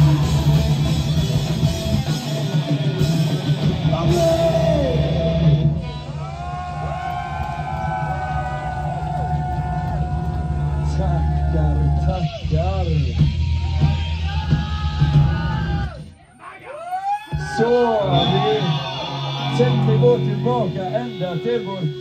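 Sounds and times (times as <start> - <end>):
guitars playing bending notes: 0.0 - 6.2, 17.3 - 22.0
live metal band playing: 0.0 - 6.5, 17.3 - 22.0.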